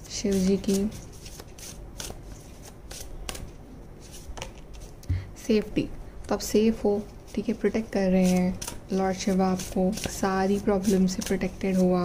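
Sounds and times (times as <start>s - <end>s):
cards being shuffled: 0.3s - 5.0s.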